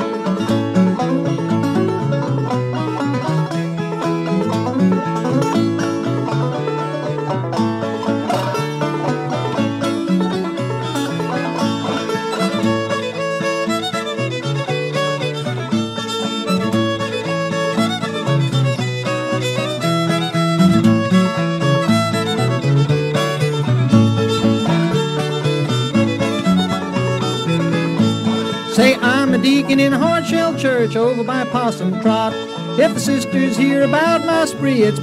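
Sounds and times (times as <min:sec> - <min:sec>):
banjo: 0:00.0 - 0:35.0
fiddle: 0:00.0 - 0:35.0
guitar accompaniment: 0:00.0 - 0:35.0.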